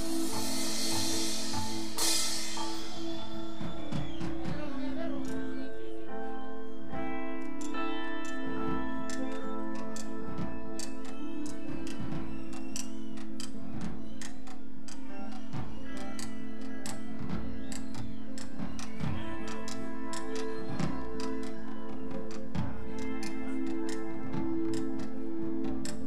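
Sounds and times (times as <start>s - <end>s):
band playing held chords: 0.0s - 14.0s.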